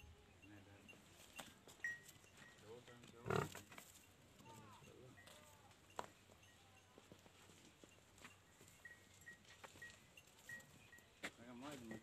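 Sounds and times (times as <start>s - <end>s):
farm animals calling: 3.2s - 3.7s.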